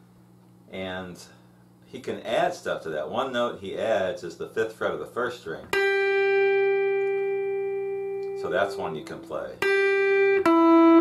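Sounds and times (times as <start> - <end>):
electric guitar note ringing: 5.7 - 11.0.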